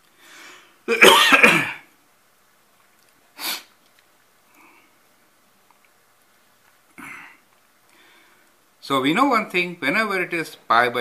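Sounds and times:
man clearing his throat: 0:00.9 - 0:01.9.

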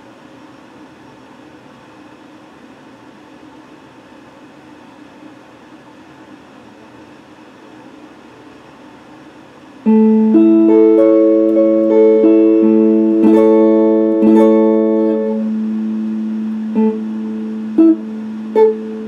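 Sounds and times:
electric guitar ringing note: 0:09.9 - 0:19.0.

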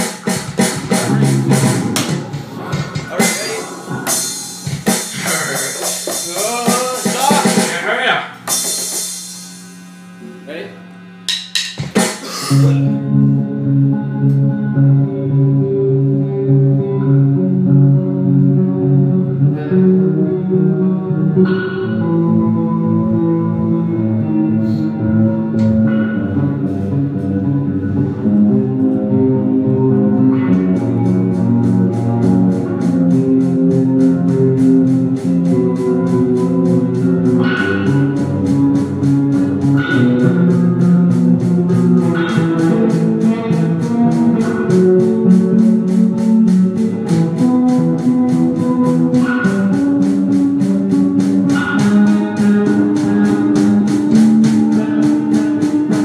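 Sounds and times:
guitar and bass chords: 0:00.0 - 0:56.0.

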